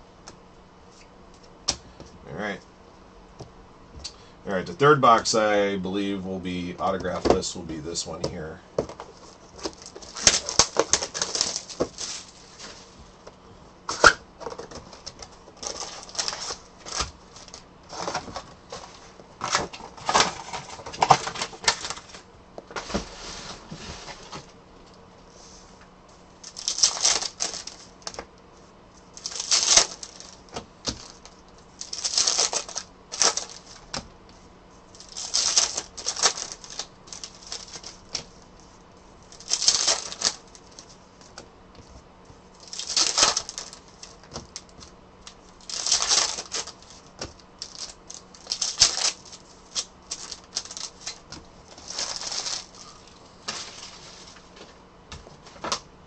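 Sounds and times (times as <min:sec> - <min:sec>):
plastic wrappers crinkling and tearing: 0:09.0 - 0:12.8, 0:13.9 - 0:22.2, 0:26.4 - 0:28.3, 0:29.0 - 0:34.0, 0:34.9 - 0:38.6, 0:39.2 - 0:41.0, 0:42.5 - 0:54.4.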